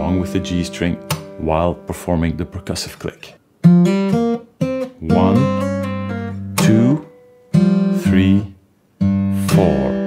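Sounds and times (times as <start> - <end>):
acoustic guitar fingerpicked: 0.0 - 2.6, 3.6 - 10.0
thumb clicking on guitar string: 1.0 - 1.4.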